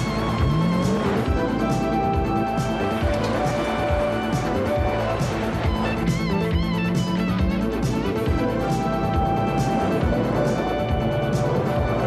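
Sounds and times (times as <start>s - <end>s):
electric guitar action music: 0.0s - 12.0s.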